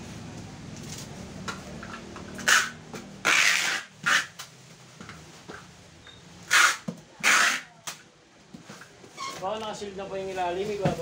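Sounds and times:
packing tape pulled from dispenser: 2.4s - 4.5s, 6.5s - 8.0s.

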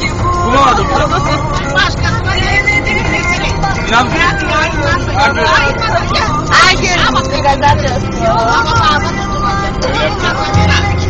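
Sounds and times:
music with voice on car stereo: 0.0s - 11.0s
road and engine rumble: 0.0s - 11.0s.

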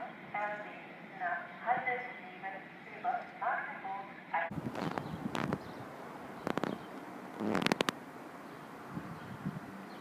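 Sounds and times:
loudspeaker announcement: 0.0s - 4.6s.

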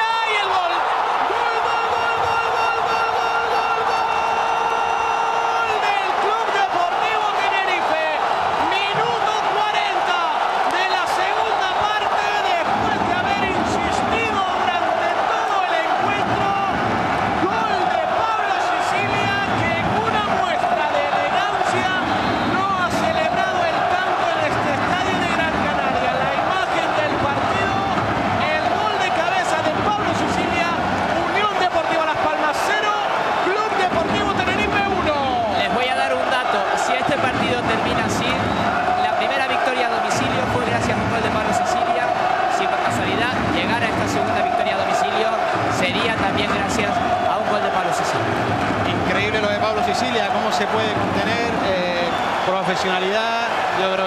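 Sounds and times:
stadium crowd cheering and chanting: 0.0s - 54.0s.

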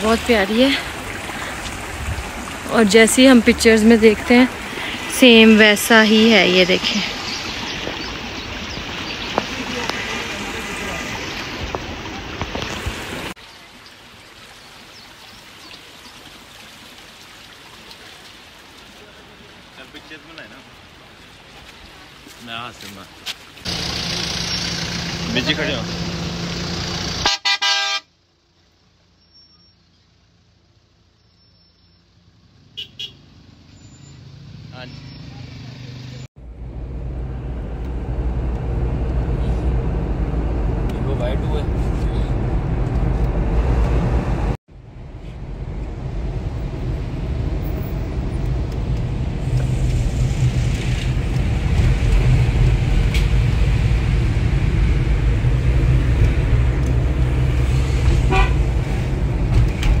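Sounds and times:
engine and road rumble: 0.0s - 60.0s
car horn toots: 27.2s - 28.1s, 32.8s - 33.2s, 58.2s - 58.7s.

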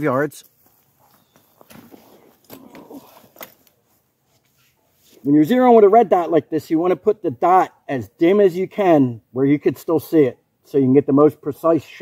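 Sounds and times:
faint footsteps: 0.4s - 5.3s.

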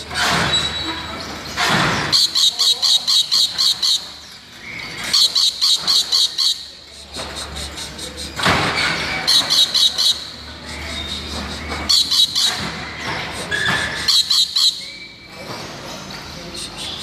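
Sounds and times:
lorikeet shrill calls: 2.1s - 6.7s, 9.2s - 15.2s
bird rasping call: 2.1s - 6.8s, 9.2s - 15.2s.

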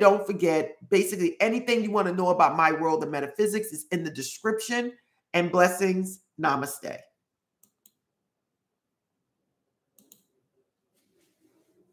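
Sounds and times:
faint clicks: 10.0s - 10.3s.

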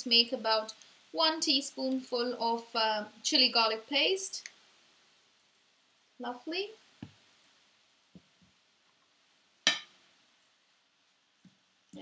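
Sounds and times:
faint steady hiss: 0.0s - 12.0s
metal spatula knocking on wok: 9.7s - 9.9s.

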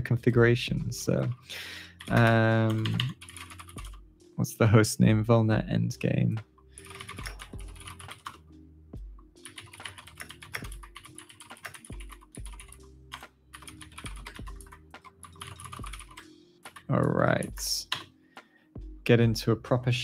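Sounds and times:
computer keyboard typing: 2.0s - 4.0s, 6.8s - 8.4s, 9.4s - 12.8s, 13.5s - 17.1s.

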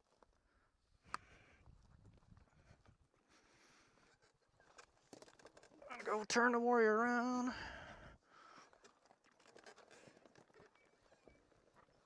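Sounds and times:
faint ticks and rustles: 0.0s - 12.0s.

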